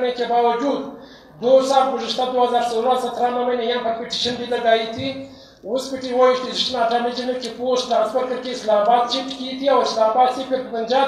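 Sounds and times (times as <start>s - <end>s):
man speaking into microphones: 0.0s - 11.0s.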